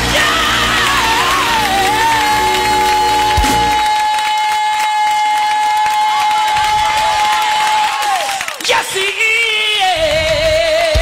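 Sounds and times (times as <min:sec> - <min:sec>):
person singing long high note: 0:00.0 - 0:06.2.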